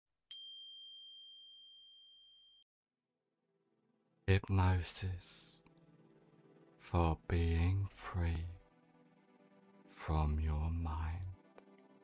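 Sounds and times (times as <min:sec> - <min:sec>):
high bell chime: 0:00.3 - 0:02.6.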